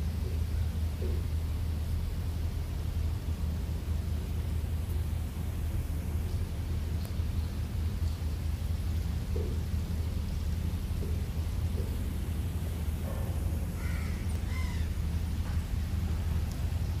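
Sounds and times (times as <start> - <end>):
wind rumble on microphone: 0.0 - 17.0
faint bird calls: 13.7 - 15.7.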